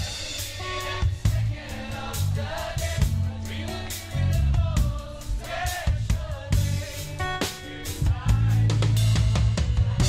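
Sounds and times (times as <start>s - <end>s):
drum and cymbal hits: 0.0s - 10.0s
live pop band playing: 0.0s - 10.0s.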